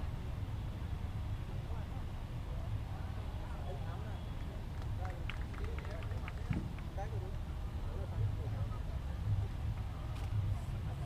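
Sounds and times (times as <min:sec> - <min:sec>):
low hum of a large hall: 0:00.0 - 0:11.0
faint chatter of voices: 0:01.4 - 0:11.0.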